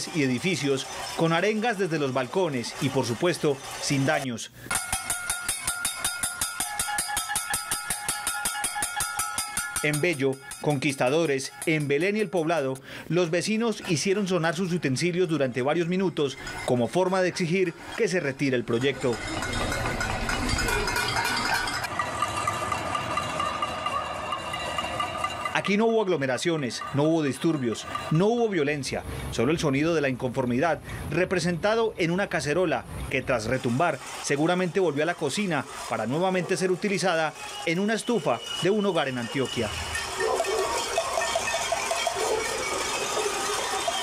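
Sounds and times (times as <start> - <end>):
people banging pots and pans: 0.0 - 13.0, 13.8 - 28.9, 33.4 - 44.0.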